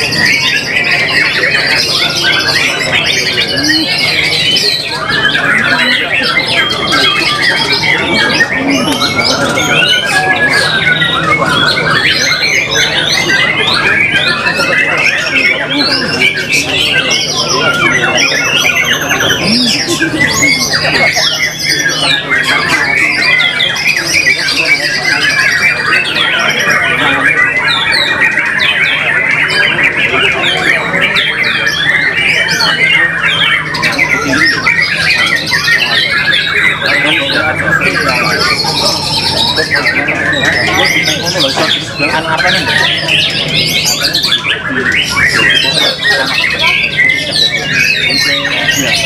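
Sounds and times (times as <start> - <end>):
caged songbirds singing: 0.0 - 49.0
people's voices: 0.0 - 49.0.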